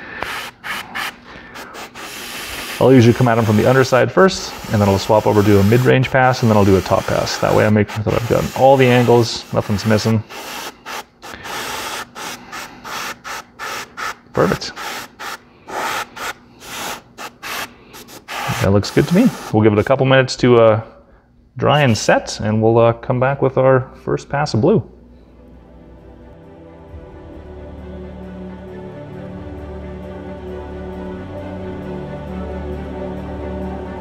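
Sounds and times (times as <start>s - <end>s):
airbrush spraying hiss: 0.0s - 19.6s.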